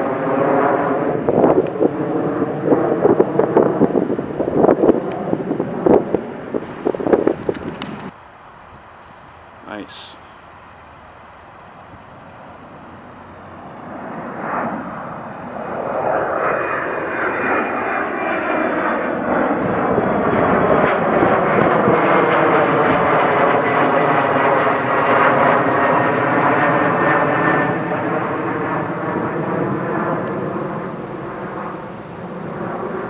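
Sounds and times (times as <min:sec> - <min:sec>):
jet airliner engines: 0:00.0 - 0:33.0.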